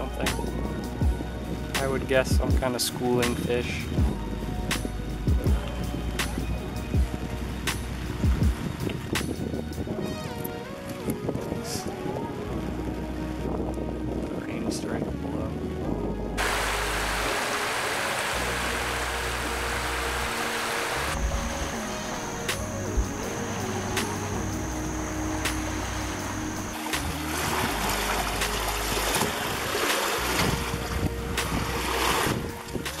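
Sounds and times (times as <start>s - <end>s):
background music with bass line: 0.0s - 33.0s
wind: 0.0s - 33.0s
small waves on shore: 16.4s - 33.0s.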